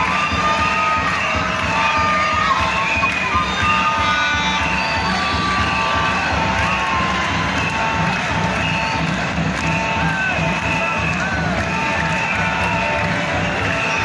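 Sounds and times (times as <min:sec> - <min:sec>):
stadium crowd cheering: 0:00.0 - 0:14.0.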